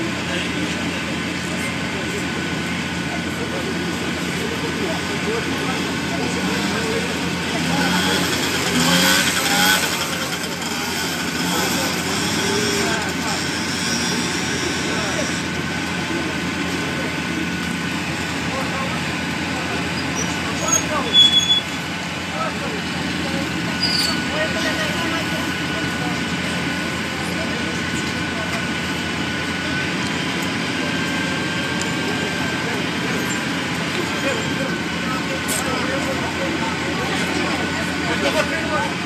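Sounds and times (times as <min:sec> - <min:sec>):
heavy diesel machinery running: 0:00.0 - 0:39.0
street noise: 0:00.0 - 0:39.0.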